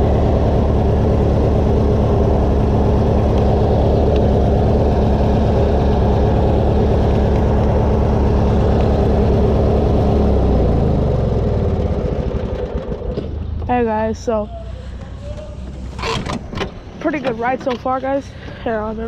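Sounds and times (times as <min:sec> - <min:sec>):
small gasoline engine running: 0:00.0 - 0:14.3.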